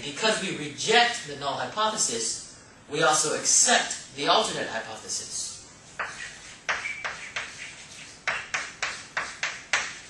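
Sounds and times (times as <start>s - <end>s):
chalk strokes on a blackboard: 5.8s - 10.0s.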